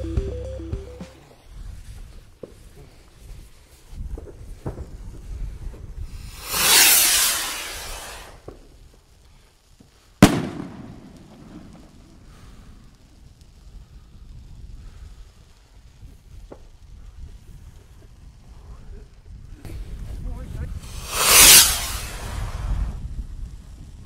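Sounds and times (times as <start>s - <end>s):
firework rocket launching hiss: 1.1s - 23.9s
firework shell bang: 10.2s - 11.8s, 20.8s - 22.6s.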